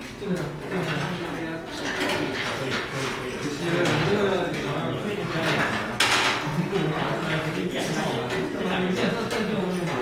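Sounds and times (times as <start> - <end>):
people talking: 0.2 - 10.0.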